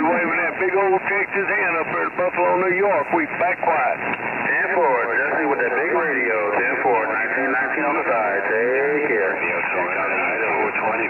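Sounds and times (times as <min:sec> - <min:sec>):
voices over cb radio: 0:00.0 - 0:11.0.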